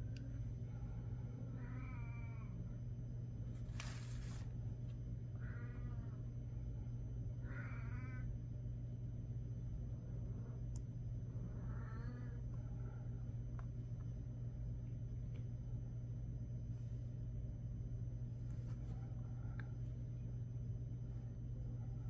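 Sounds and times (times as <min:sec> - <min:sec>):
steady low hum: 0:00.0 - 0:22.0
short pitched animal-like calls: 0:07.4 - 0:08.3.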